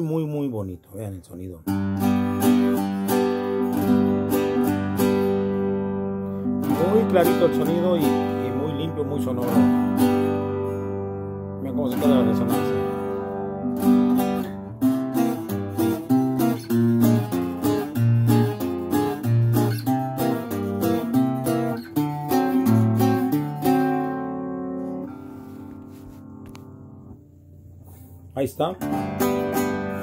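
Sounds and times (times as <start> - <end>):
bass guitar picking and strumming: 1.6 - 30.0.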